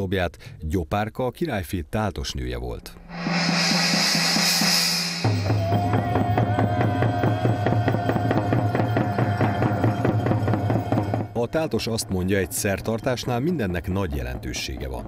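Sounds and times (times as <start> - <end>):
shimmering gong wash: 3.1 - 6.0
long held tone: 3.1 - 6.2.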